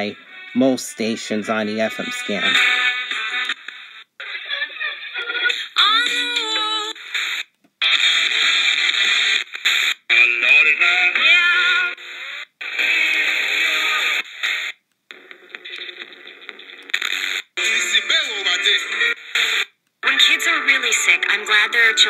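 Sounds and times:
radio scanning stations: 0:00.0 - 0:04.5
music over radio: 0:00.0 - 0:22.0.

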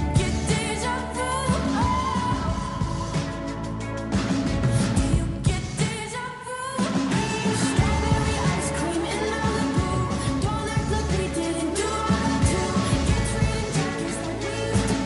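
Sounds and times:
pop song with singing: 0:00.0 - 0:15.0.

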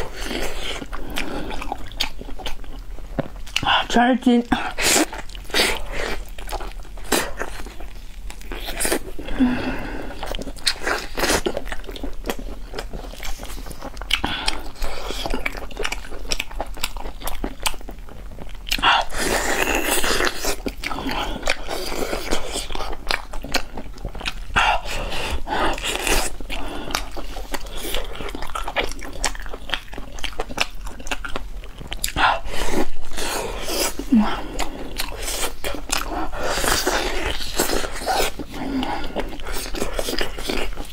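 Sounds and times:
chewing meat with wet clicks: 0:00.7 - 0:03.7, 0:10.2 - 0:24.9, 0:25.7 - 0:32.3, 0:34.5 - 0:40.9.

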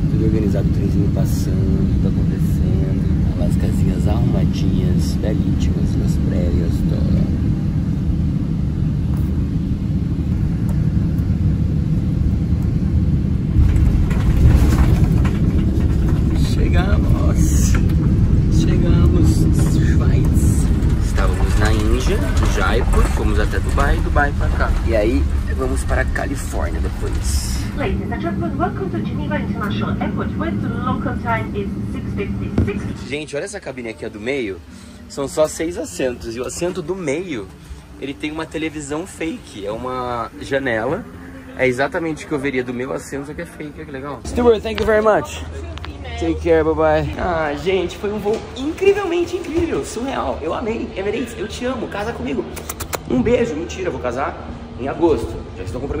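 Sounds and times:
airliner cabin drone: 0:00.0 - 0:56.0
jet engines and airflow rumble: 0:00.0 - 0:56.0
jet rolling along runway: 0:00.0 - 0:56.0
indistinct talking: 0:16.0 - 0:56.0.

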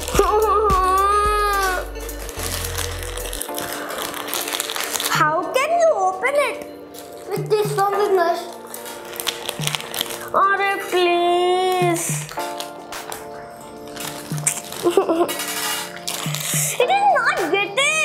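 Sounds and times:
plastic packets crinkling: 0:00.0 - 0:05.8, 0:06.8 - 0:17.0
background music: 0:00.0 - 0:18.0
child's voice: 0:00.1 - 0:01.9, 0:05.1 - 0:06.7, 0:07.3 - 0:08.6, 0:10.3 - 0:12.3, 0:16.7 - 0:18.0.

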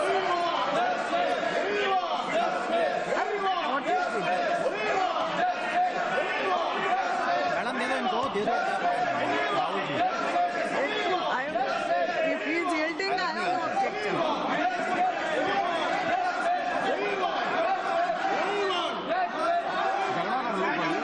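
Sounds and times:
babble of many voices: 0:00.0 - 0:21.0.

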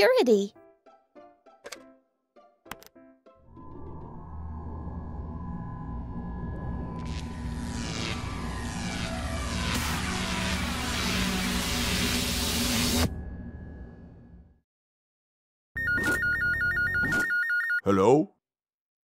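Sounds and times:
low rumble: 0:03.5 - 0:14.6.

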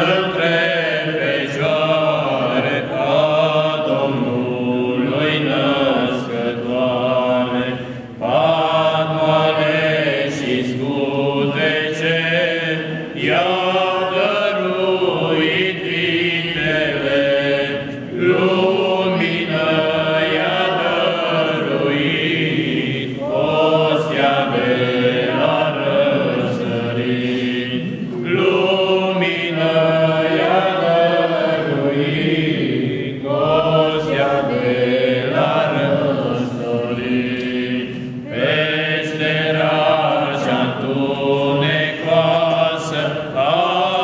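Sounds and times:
group singing unaccompanied carol: 0:00.0 - 0:44.0.

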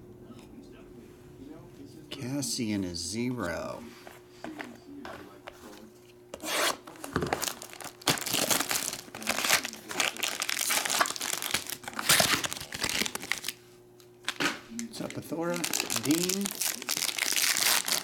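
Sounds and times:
foil wrapper crinkling: 0:06.9 - 0:13.6, 0:14.2 - 0:18.0.

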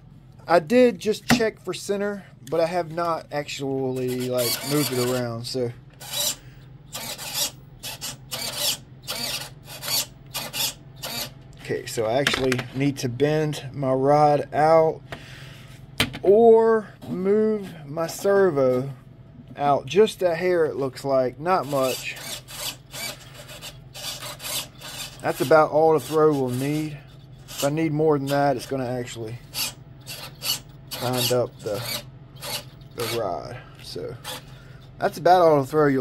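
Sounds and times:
steady low hum: 0:00.0 - 0:36.0
servo whirring: 0:04.0 - 0:05.2, 0:06.0 - 0:11.3, 0:21.6 - 0:25.5, 0:29.4 - 0:33.2.

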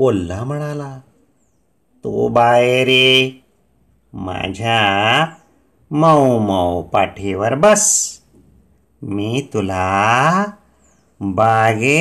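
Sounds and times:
man chanting: 0:00.0 - 0:01.2, 0:02.0 - 0:08.4, 0:09.0 - 0:12.0.

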